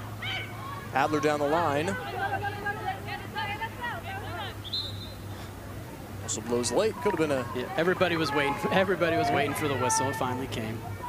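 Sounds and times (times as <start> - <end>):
voices calling out: 0.0 - 11.0.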